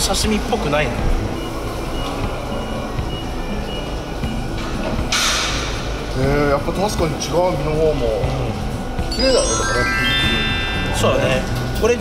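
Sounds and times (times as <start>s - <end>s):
short high-pitched tones: 9.1s - 11.6s.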